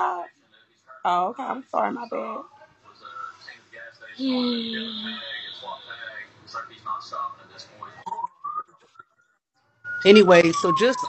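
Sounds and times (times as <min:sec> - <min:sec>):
faint broken speech: 0:00.0 - 0:09.4.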